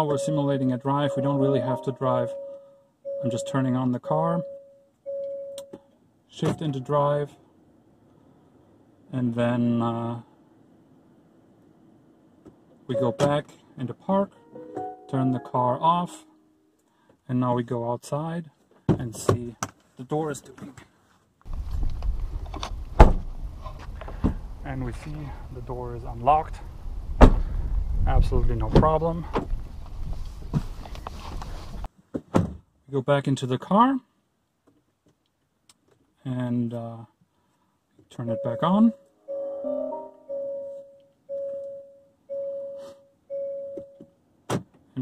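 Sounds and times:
multi-note startup chime: 0.1 - 3.6, 38.3 - 42.8
single-tone chime: 1.1 - 3.6, 38.3 - 44.0
wind rumble on microphone: 21.5 - 31.9.

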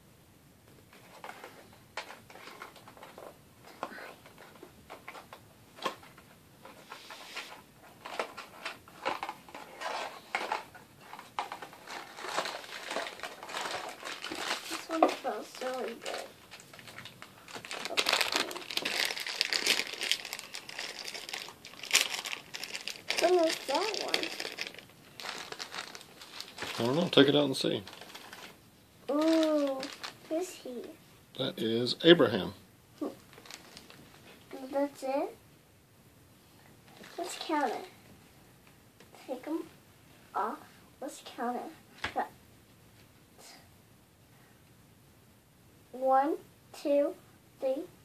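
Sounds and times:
packaging crinkling and tearing: 7.4 - 30.4, 33.1 - 34.2.

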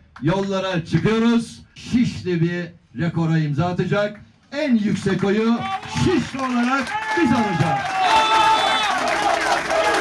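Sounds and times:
crowd cheering and clapping: 5.6 - 10.0
high held cry: 6.8 - 10.0.

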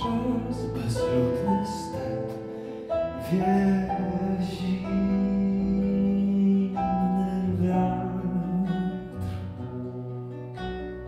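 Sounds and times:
acoustic guitar held notes: 0.0 - 11.0.

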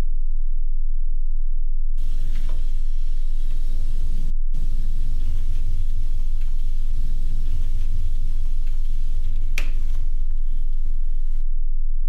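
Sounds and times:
deep low rumbling drone: 0.0 - 12.0.

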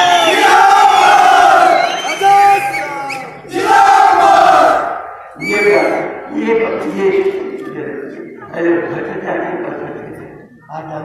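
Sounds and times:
crowd shouting slogans: 0.0 - 5.2.

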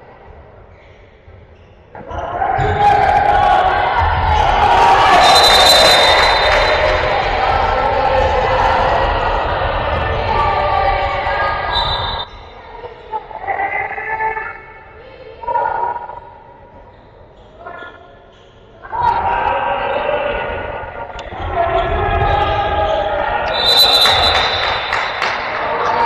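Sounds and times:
people shouting: 2.1 - 12.3, 18.8 - 26.0.

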